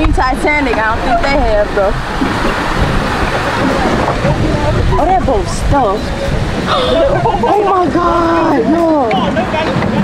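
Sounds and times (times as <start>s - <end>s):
water washing on lake shore: 0.0s - 10.0s
wind buffeting microphone: 0.0s - 10.0s.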